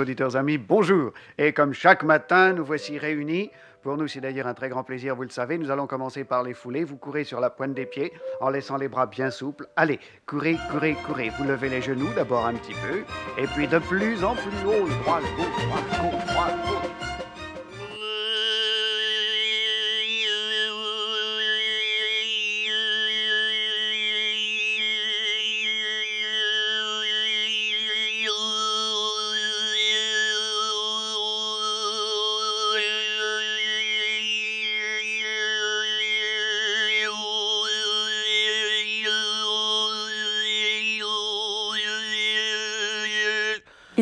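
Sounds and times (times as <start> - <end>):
overtone singing: 2.2 - 4.8, 5.6 - 44.0.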